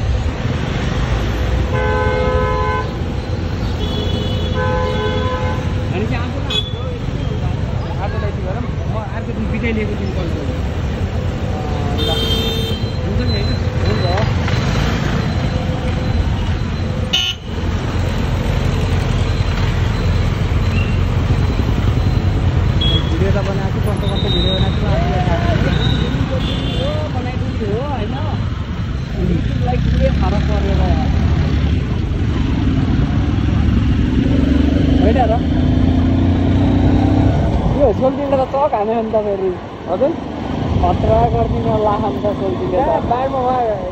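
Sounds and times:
engine and road rumble: 0.0s - 43.9s.

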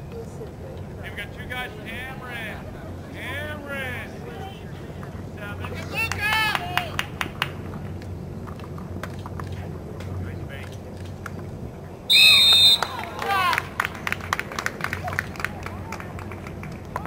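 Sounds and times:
referee's whistle blast: 12.1s - 13.0s
players calling: 12.1s - 16.0s.

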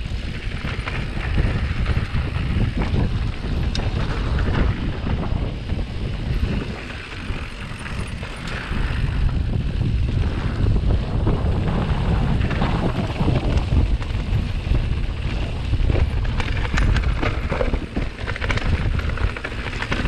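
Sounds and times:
bike tyres rolling on gravel: 0.0s - 20.0s
wind buffeting microphone: 0.0s - 20.0s
clicks and rattles of stones: 12.4s - 20.0s.

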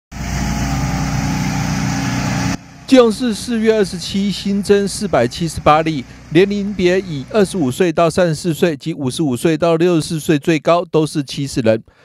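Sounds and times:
engine drone: 0.1s - 8.2s.

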